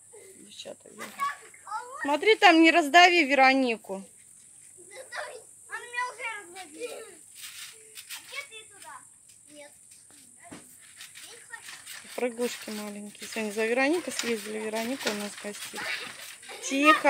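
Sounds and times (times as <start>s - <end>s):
thump on trampoline: 10.4s - 10.8s
girls calling out: 13.5s - 17.0s.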